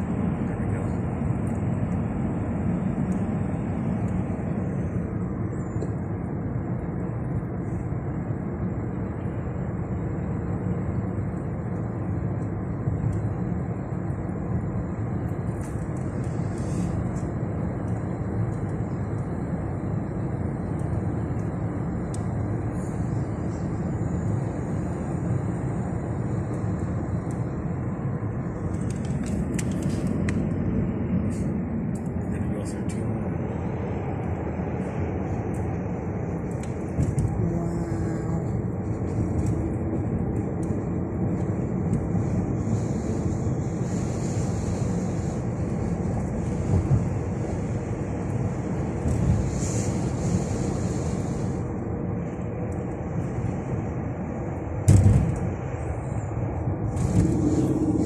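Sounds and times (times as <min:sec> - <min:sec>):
car road noise rumble: 0:00.0 - 0:58.0.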